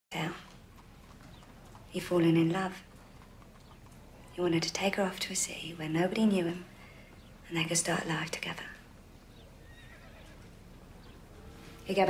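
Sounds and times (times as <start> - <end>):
woman speaking: 2.0 - 2.8, 4.4 - 6.7, 7.5 - 8.8.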